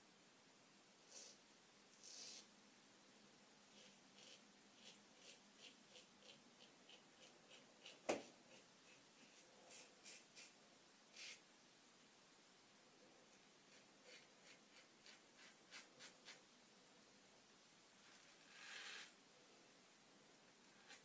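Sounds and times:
razor scraping stubble: 3.7 - 10.5.

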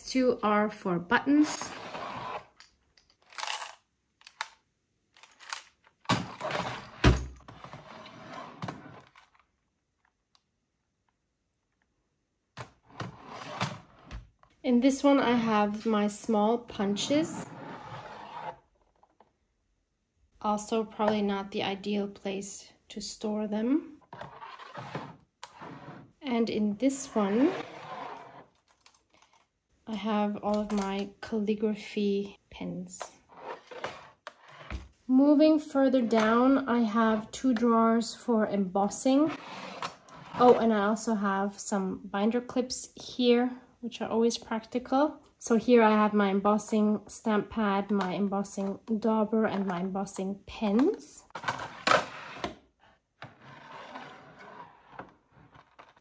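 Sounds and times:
plastic bin sliding out of shelf: 1.4 - 2.5, 6.1 - 9.2, 12.8 - 14.2, 24.2 - 26.1
plastic drawer sliding: 1.4 - 2.6, 6.1 - 9.4, 12.6 - 14.3, 16.9 - 18.6, 24.1 - 26.1, 27.0 - 29.4, 33.3 - 34.9, 50.8 - 52.6, 53.2 - 56.0.

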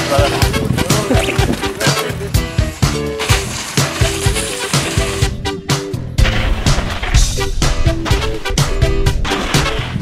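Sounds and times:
music with steady drum beat: 0.0 - 10.0.

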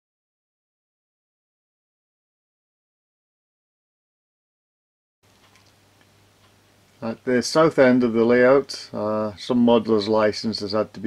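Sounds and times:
faint ticks: 5.3 - 7.0.

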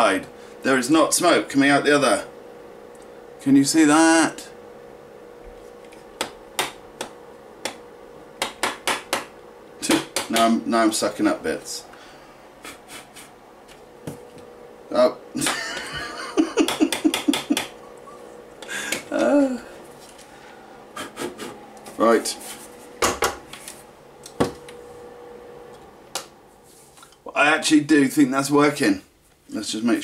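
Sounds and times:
extractor fan humming: 0.0 - 30.0.

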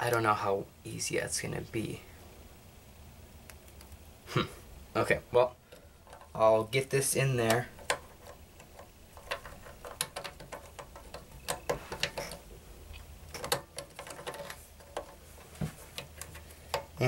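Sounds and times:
faint low hum: 0.0 - 17.0
plastic parts clicking and tapping: 5.7 - 6.4, 7.4 - 17.0.

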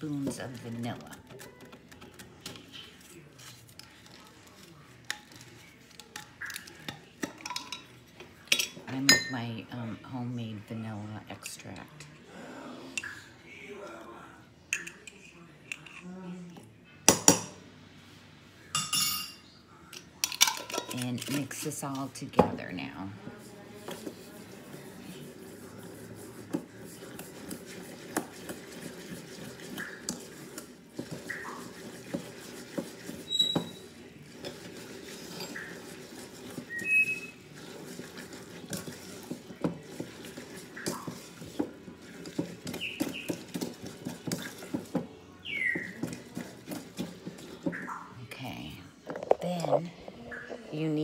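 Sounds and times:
utensil scraping a bowl: 20.8 - 48.1.

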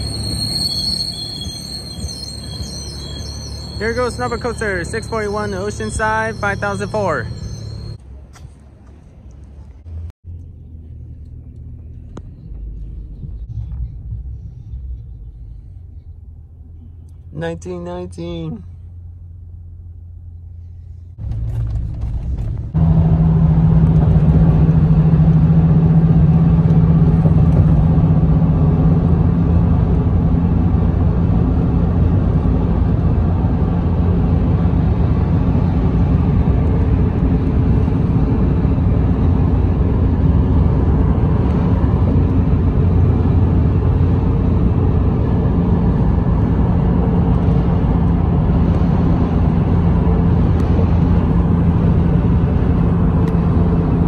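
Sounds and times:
vehicle interior rumble: 0.0 - 54.0.

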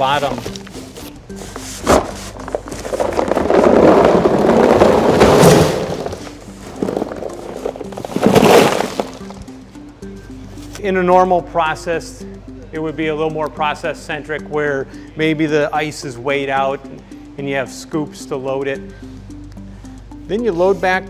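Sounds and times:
background music: 0.0 - 21.0
dry ice pellets rattling: 2.3 - 9.5.

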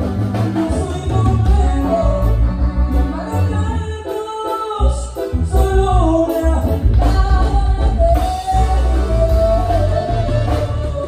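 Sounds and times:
strong bass line: 0.0 - 4.1, 4.8 - 11.0
drums: 0.0 - 11.0
man singing into a microphone: 0.6 - 11.0.

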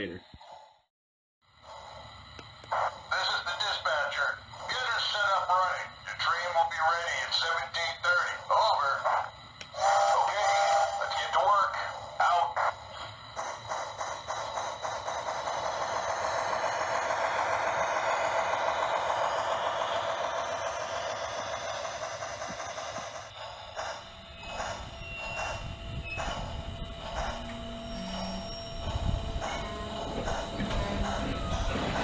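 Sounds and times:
model train steam chuffing: 1.5 - 32.0.

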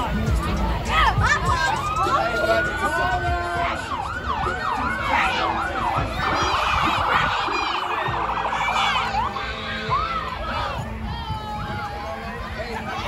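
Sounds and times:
emergency siren yelping and warbling: 1.3 - 10.7.

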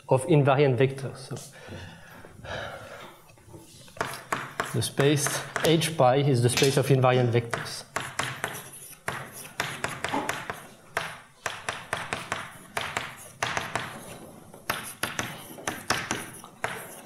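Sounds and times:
chalk tapping and scratching: 3.6 - 5.9, 7.4 - 17.0.

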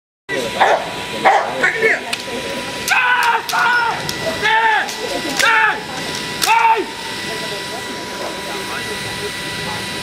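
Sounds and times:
dog barking: 0.6 - 1.6.

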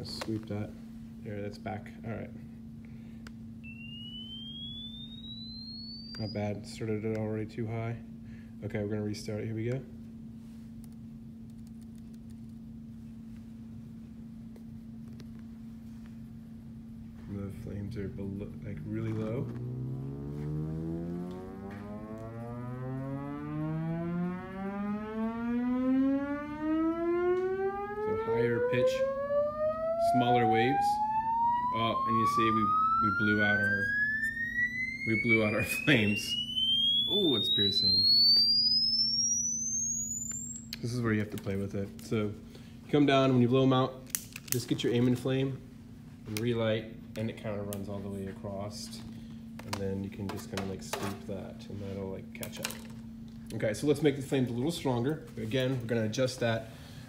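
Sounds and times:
steady low hum: 0.0 - 57.0
rising sine tone sweep: 3.6 - 7.5, 17.0 - 41.3.

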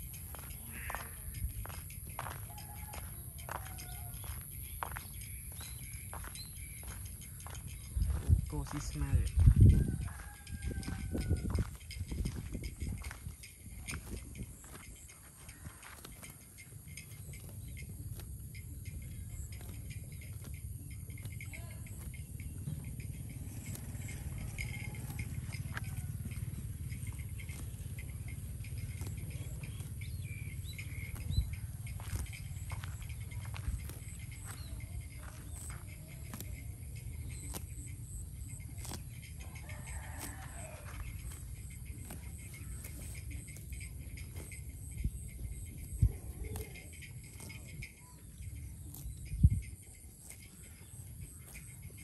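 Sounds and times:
steady low rumble: 0.0 - 15.4, 22.1 - 39.4
cow tearing and chewing grass: 0.0 - 52.0.

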